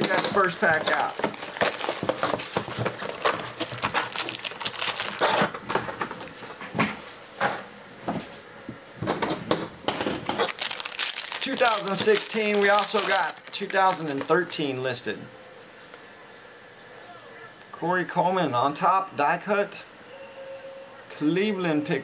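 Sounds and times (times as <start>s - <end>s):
wrapper crinkling: 0.0s - 7.3s, 10.3s - 14.8s
cardboard box rustling: 0.4s - 5.3s.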